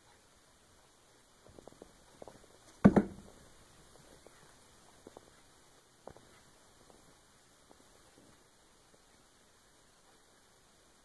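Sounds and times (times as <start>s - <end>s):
cat landing thump on wood floor: 2.8s - 3.3s.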